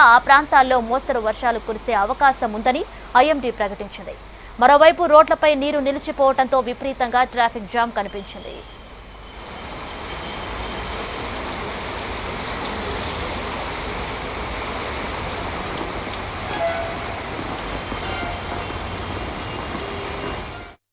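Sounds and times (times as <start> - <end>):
heavy rain: 8.8 - 20.8
traffic on wet road: 9.2 - 20.8.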